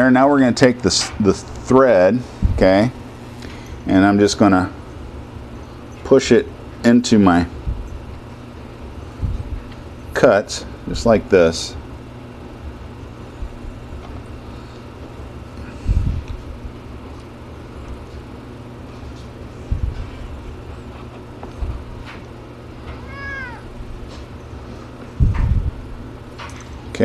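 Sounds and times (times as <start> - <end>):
steady low hum: 0.0 - 27.0
dull low thumps: 19.7 - 20.4, 25.2 - 26.0
cat meowing: 23.0 - 23.7.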